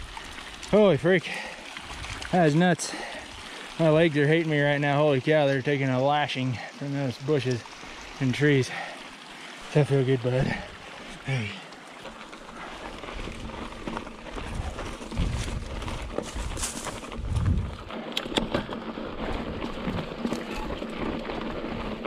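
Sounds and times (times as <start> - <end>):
bike tyres rolling on rocky dirt: 0.0 - 22.0
bike clicks and rattles: 11.0 - 22.0.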